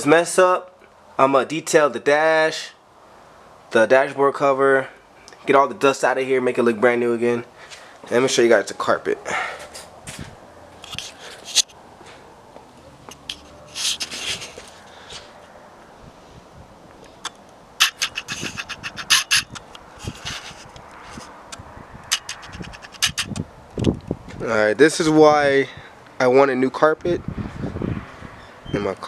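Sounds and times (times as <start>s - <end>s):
footsteps on concrete: 9.5s - 11.4s, 12.0s - 15.4s
camera handling noise: 10.8s - 11.8s, 17.1s - 24.0s
quick clicks: 17.0s - 24.0s.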